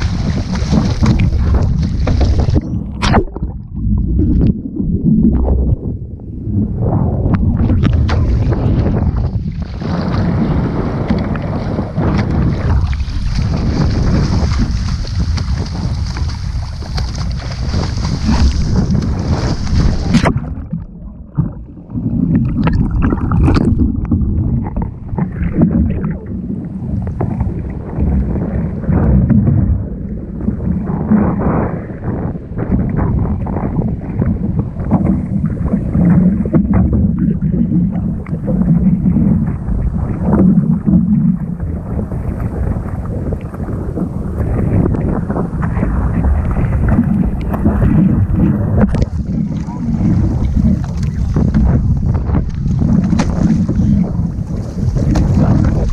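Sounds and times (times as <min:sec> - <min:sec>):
seawater splashing and sloshing: 0:00.0 - 0:05.4, 0:07.3 - 0:29.4, 0:34.8 - 0:55.9
wind rumbling on microphone: 0:00.0 - 0:55.9.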